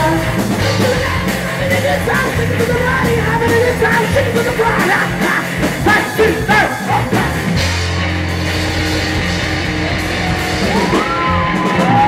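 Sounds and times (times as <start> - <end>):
man singing: 0.0 - 7.6
drum beat: 0.0 - 12.0
electric bass: 0.0 - 12.0
electric guitar: 0.0 - 12.0.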